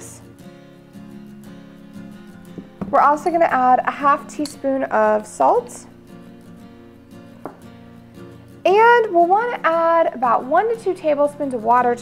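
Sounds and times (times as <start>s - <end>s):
soft acoustic guitar music: 0.0s - 12.0s.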